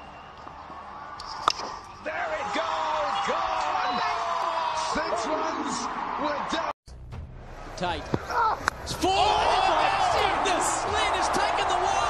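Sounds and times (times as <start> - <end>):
men shouting and cheering: 2.0 - 6.7, 8.3 - 12.0.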